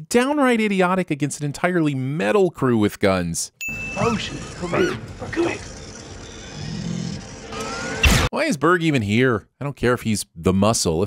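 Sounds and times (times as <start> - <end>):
rising electronic whine: 3.8 - 8.3.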